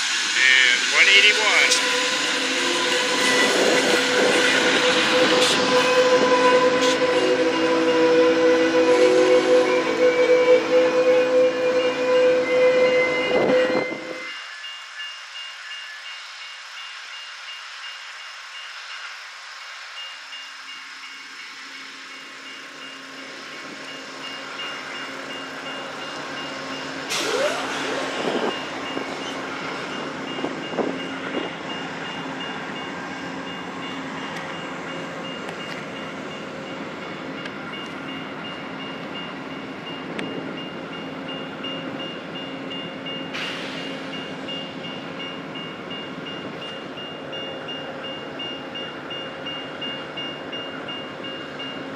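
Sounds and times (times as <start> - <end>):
train wheels squealing: 0.2 - 36.8, 39.9 - 51.9.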